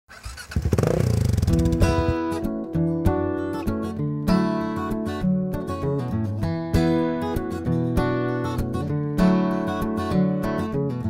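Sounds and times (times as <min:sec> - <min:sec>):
motorcycle engine revving: 0:00.1 - 0:02.4
acoustic guitar music: 0:00.8 - 0:11.0.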